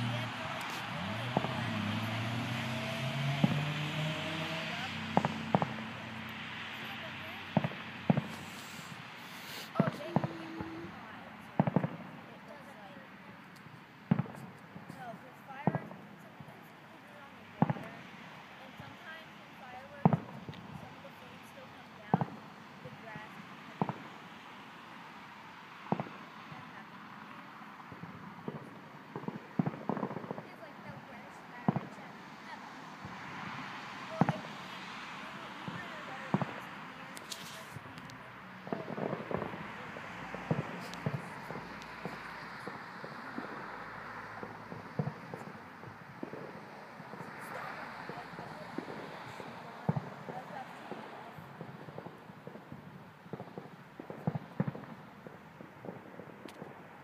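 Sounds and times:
background hiss: 0:00.0 - 0:11.1
people's voices: 0:00.0 - 0:52.9
fireworks bangs: 0:00.0 - 0:57.0.

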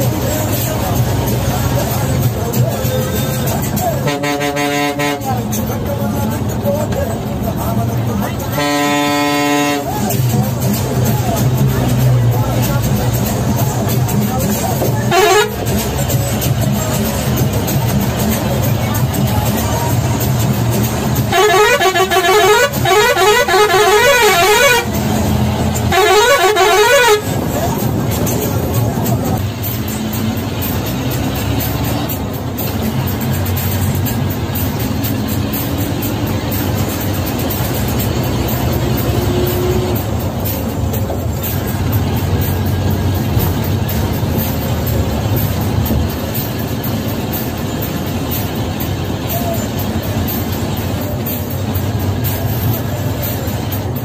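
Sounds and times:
bus diesel engine: 0:00.0 - 0:54.0
road noise: 0:00.0 - 0:54.0
musical air horn: 0:04.0 - 0:05.4, 0:08.5 - 0:10.1, 0:15.1 - 0:15.8, 0:21.2 - 0:27.4.

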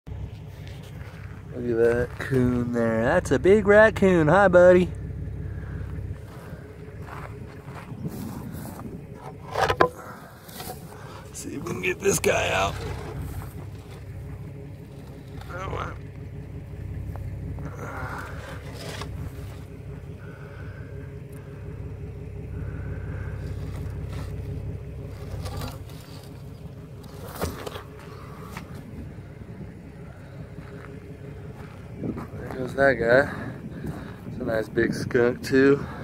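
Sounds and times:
vehicle engine idling: 0:00.0 - 0:36.0
knocks and scrapes of wooden box: 0:08.2 - 0:11.0, 0:12.7 - 0:14.0, 0:18.4 - 0:19.6, 0:25.1 - 0:28.7.

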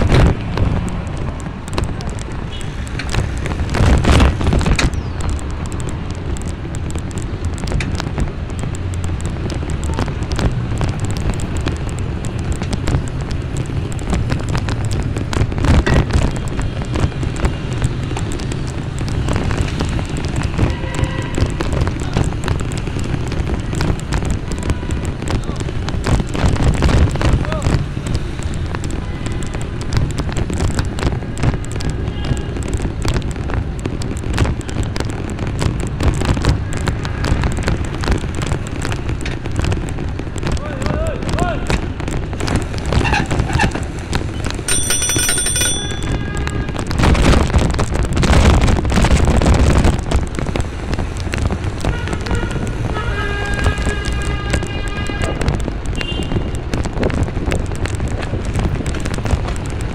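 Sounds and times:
wind buffeting microphone: 0:00.0 - 0:44.8, 0:45.9 - 0:59.9
city traffic noise: 0:00.0 - 0:59.9.

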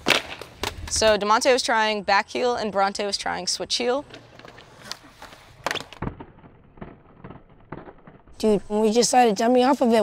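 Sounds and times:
skateboard wheels rolling on concrete: 0:00.0 - 0:10.0
skateboard clacking on ground: 0:04.0 - 0:09.7.

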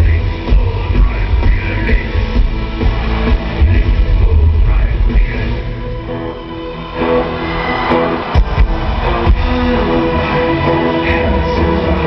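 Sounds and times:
distorted guitar chords: 0:00.0 - 0:12.0
metal band playing live: 0:00.0 - 0:12.0.

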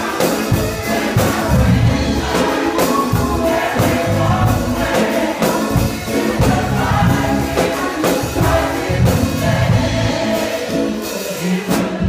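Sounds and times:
choir singing: 0:00.0 - 0:12.0
drum kit steady beat: 0:00.0 - 0:12.0
deep bass notes: 0:01.2 - 0:02.4, 0:03.1 - 0:05.0, 0:05.7 - 0:07.6, 0:08.4 - 0:10.3.

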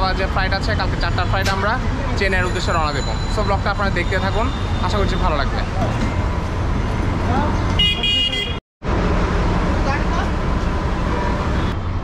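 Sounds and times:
traffic engine rumble: 0:00.0 - 0:12.0
vehicle horn: 0:07.8 - 0:08.6.

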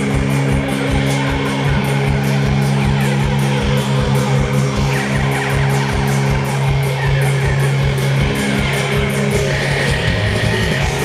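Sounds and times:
bass guitar: 0:00.0 - 0:11.0
distorted electric guitars: 0:00.0 - 0:11.0
steady drum beat: 0:00.0 - 0:11.0.

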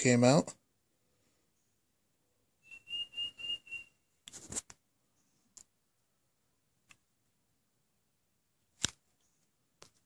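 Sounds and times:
high whistling tone pulses: 0:02.6 - 0:04.0.

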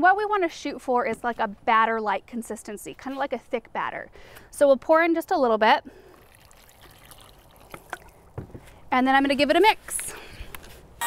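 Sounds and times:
water trickling into sand: 0:06.0 - 0:08.4.

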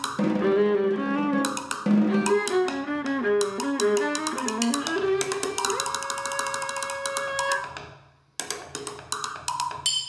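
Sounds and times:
sharp percussion strikes: 0:09.5 - 0:10.0.

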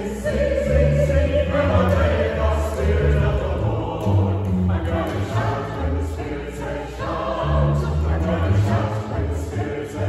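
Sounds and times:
plucked double bass: 0:00.0 - 0:09.6
mixed choir singing: 0:00.0 - 0:10.0.

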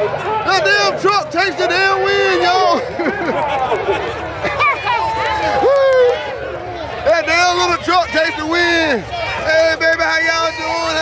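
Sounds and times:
crowd talking and laughing: 0:00.0 - 0:11.0.

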